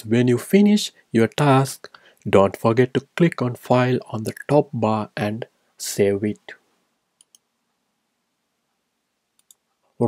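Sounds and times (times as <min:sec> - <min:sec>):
faint computer mouse clicks: 0:07.2 - 0:07.5, 0:09.4 - 0:09.6.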